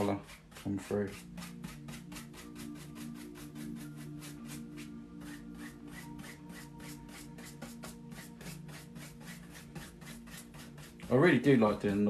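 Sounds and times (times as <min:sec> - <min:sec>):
brush scrubbing paint on canvas: 0:00.0 - 0:12.0.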